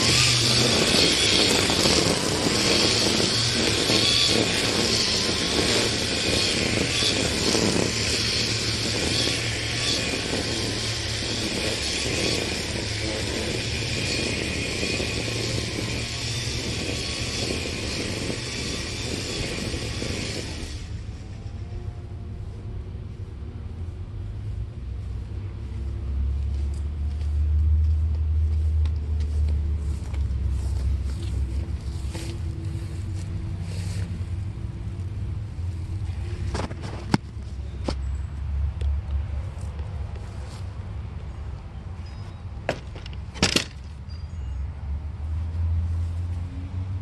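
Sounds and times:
string trimmer motor hum: 0.0s - 22.1s
steady low rumble: 0.0s - 42.0s
string trimmer whirring through grass: 0.0s - 44.6s.

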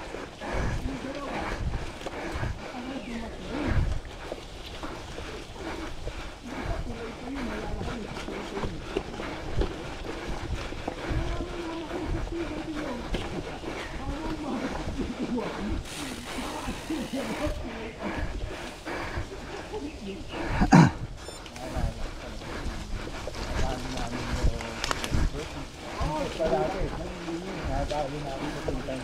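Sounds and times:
bike tyres humming on dirt: 15.3s - 20.3s.

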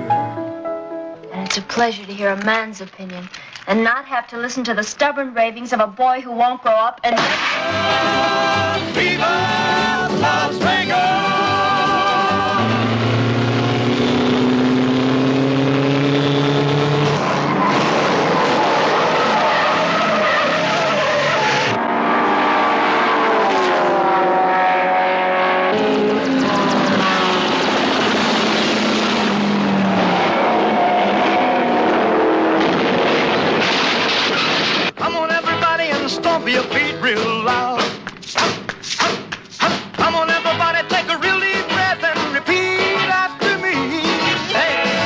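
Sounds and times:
tyres skidding: 7.2s - 35.0s
racing car engines revving: 7.4s - 34.9s.

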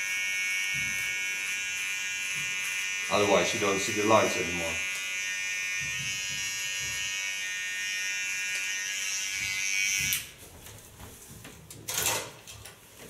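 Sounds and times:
electric hair clipper buzzing: 0.0s - 10.4s.

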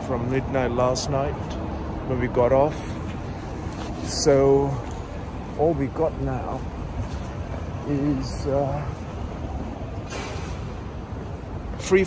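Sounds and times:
street traffic rumble: 0.0s - 12.0s
tram approaching: 0.0s - 12.0s.

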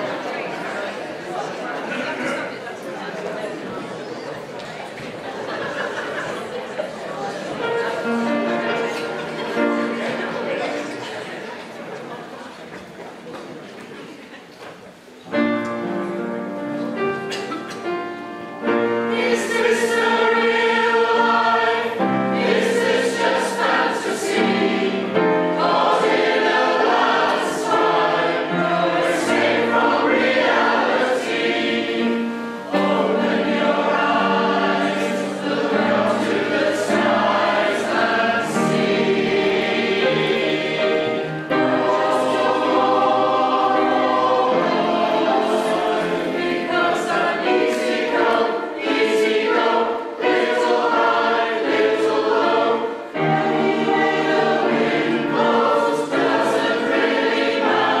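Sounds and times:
mixed choir singing: 0.0s - 2.4s, 5.2s - 11.7s, 15.7s - 58.0s.

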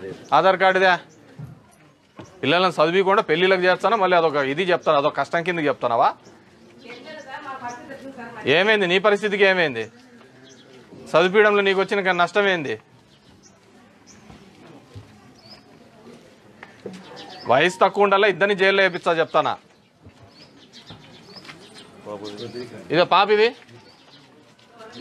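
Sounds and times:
man speaking loudly: 17.5s - 19.6s.

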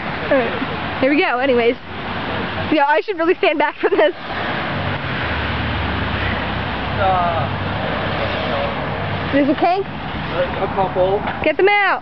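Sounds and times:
low rumble of street traffic: 0.0s - 12.0s
steady rushing outdoor noise: 0.0s - 12.0s.

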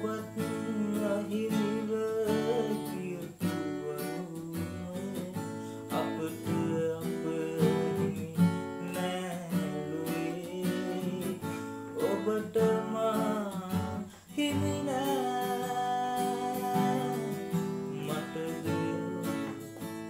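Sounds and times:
acoustic guitar strumming: 0.0s - 20.0s
man singing: 0.0s - 20.0s.

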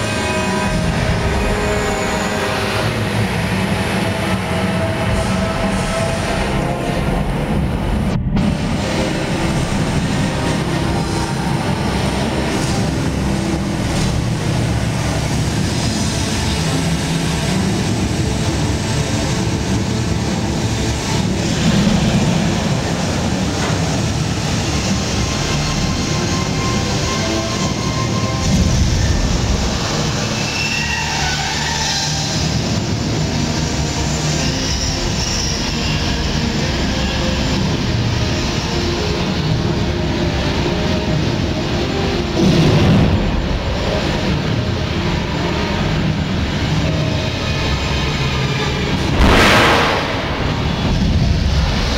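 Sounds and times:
gas flames rumbling: 0.0s - 30.6s, 32.2s - 51.9s.

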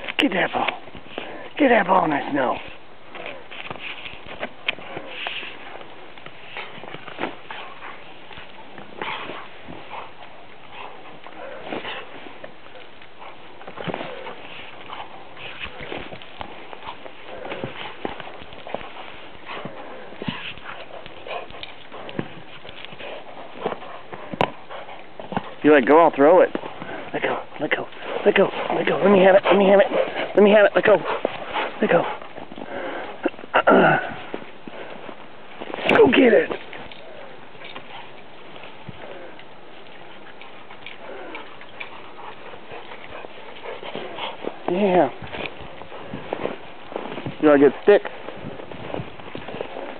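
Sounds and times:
steady background hiss: 0.0s - 49.9s
crunches and knocks in snow: 0.3s - 32.6s, 42.6s - 49.9s
dog pushing ball through snow: 0.3s - 49.9s
dog footfalls in snow: 43.1s - 49.9s.

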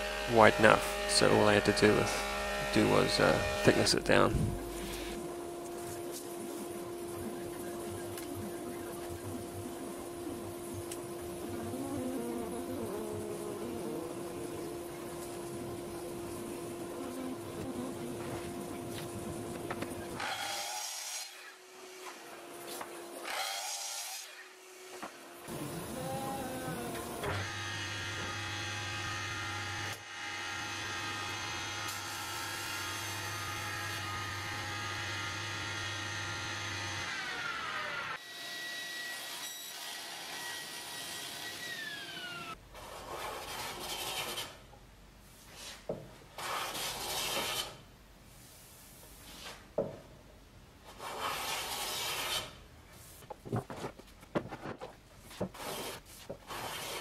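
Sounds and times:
rasping strokes on wood: 0.0s - 4.0s
jointer running and winding down: 0.0s - 20.4s, 25.5s - 38.2s, 40.4s - 42.6s.

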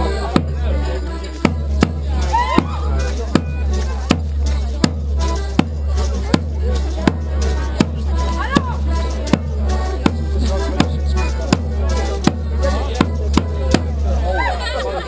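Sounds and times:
folk dance music with sharp beat: 0.0s - 15.0s
voices: 0.0s - 15.0s.

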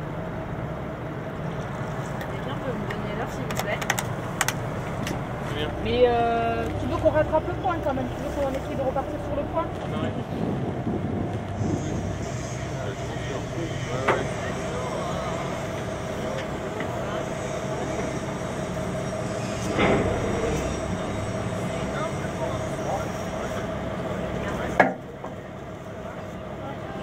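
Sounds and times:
boat engine idling: 0.0s - 27.0s.

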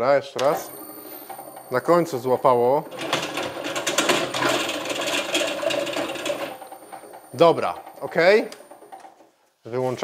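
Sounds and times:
faint motor tone: 0.4s - 9.1s.

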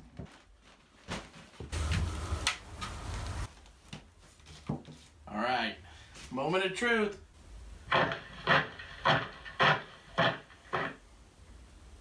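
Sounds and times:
plastic rustling and scraping: 0.0s - 2.1s.

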